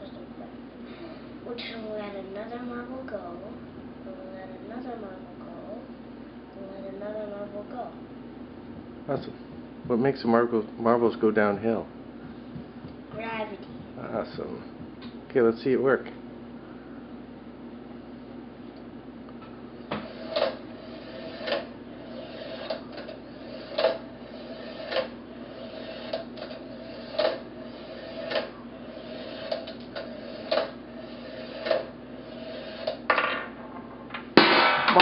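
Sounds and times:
marble rolling on metal track: 20.1s - 33.8s
loud crash: 34.4s - 35.0s.

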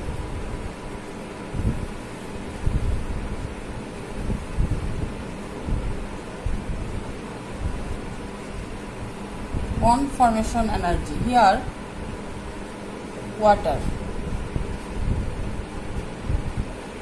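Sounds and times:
low rumble and hiss: 0.0s - 17.0s.

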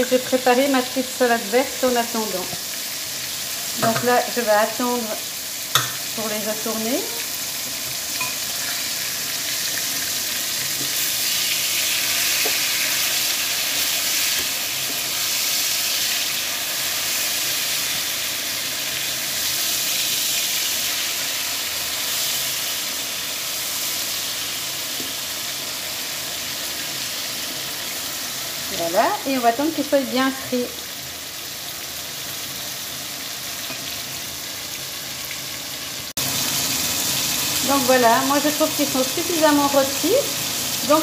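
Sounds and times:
fish frying in oil: 0.0s - 41.0s.

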